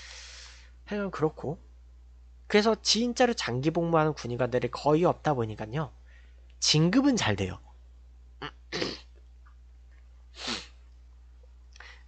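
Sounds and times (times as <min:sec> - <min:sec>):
faint low hum: 0:00.0 - 0:12.0
man sniffing: 0:10.3 - 0:10.8.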